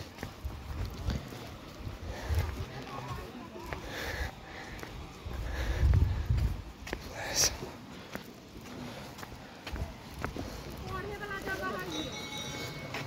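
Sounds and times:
footsteps on stone slabs: 0.0s - 13.0s.

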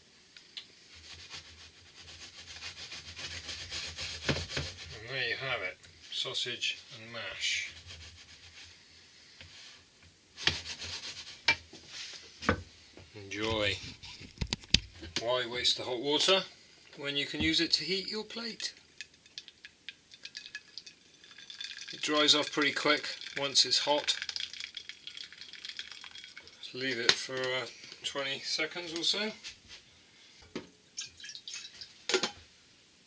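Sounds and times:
wooden fork scraping frying pan: 0.9s - 5.0s, 10.4s - 12.2s
food sizzling in a pan: 19.0s - 22.4s, 23.0s - 26.7s.

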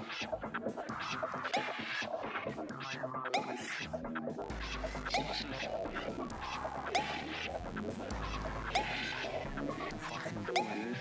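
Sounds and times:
warbling electronic music: 0.0s - 11.0s.

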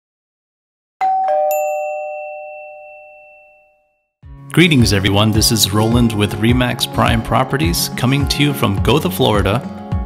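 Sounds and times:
two-note ding-dong chime: 1.0s - 4.1s
bright high ping: 1.1s - 4.1s.

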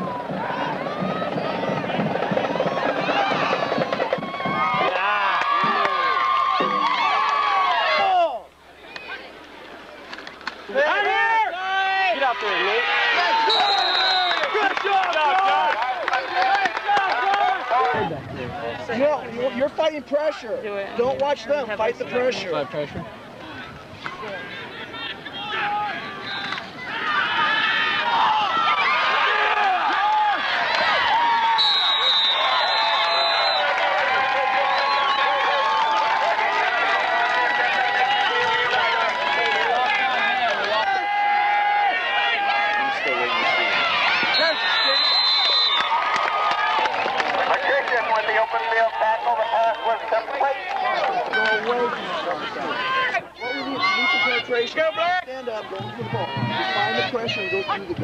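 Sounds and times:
crowd yelling and cheering: 0.0s - 58.0s.

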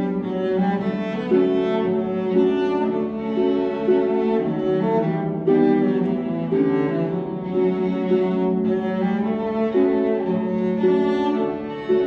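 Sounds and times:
cello violin and harp trio: 0.0s - 12.0s.

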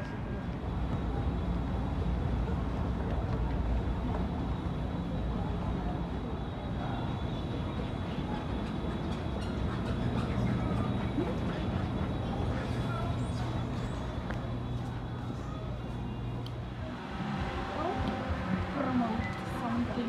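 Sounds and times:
moving walkway rumbling: 7.2s - 20.0s.

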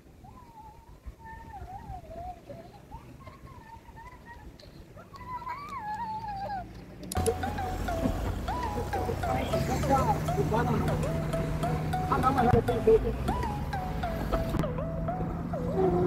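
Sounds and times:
car engine hum: 2.4s - 16.0s
voices in a car: 7.3s - 11.3s, 12.0s - 14.6s.

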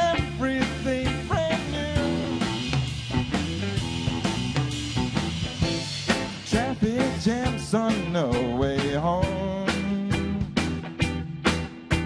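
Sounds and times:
drum kit beat: 0.0s - 12.0s
electric bass: 0.0s - 12.0s
electric guitar: 0.0s - 12.0s.

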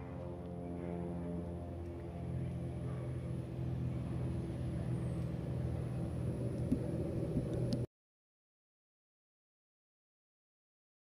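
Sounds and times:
low rumbling drone: 0.0s - 7.9s.

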